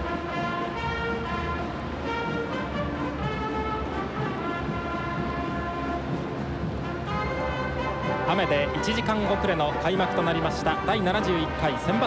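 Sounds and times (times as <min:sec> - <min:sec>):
brass marching band playing: 0:00.0 - 0:12.0.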